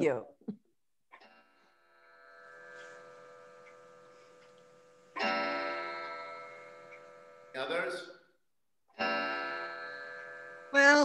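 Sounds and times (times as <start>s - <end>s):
sustained musical chords: 9.0s - 11.0s.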